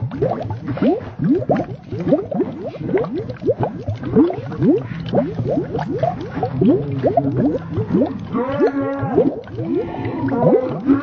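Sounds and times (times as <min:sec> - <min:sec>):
watery bloops and gurgles: 0:00.0 - 0:11.0.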